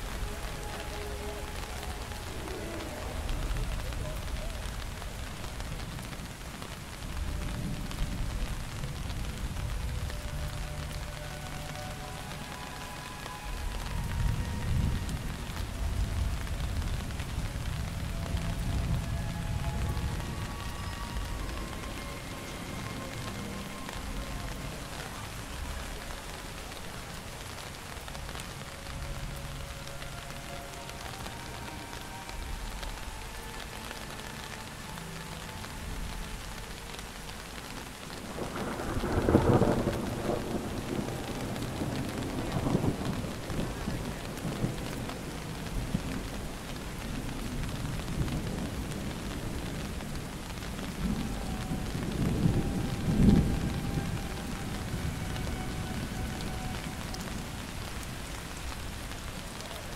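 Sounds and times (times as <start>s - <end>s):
thunder rumbling: 0.0s - 33.5s, 34.8s - 59.9s
steady rain falling: 0.0s - 59.9s.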